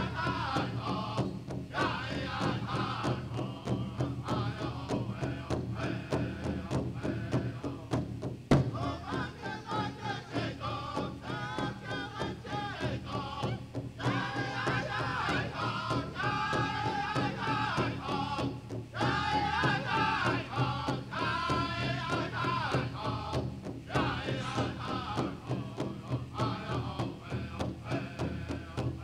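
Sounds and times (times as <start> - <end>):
big drum beat: 0.0 - 29.0
group singing in unison: 0.0 - 29.0.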